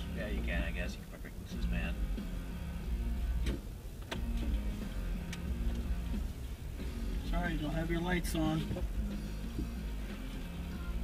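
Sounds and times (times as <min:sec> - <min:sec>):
engine and road rumble: 0:00.0 - 0:11.0
quiet radio music: 0:00.0 - 0:11.0
turn signal ticking: 0:00.0 - 0:11.0.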